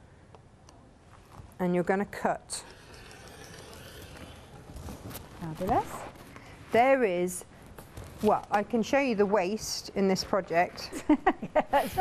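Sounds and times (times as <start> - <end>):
rotary cutter cutting fabric: 2.5 - 6.2.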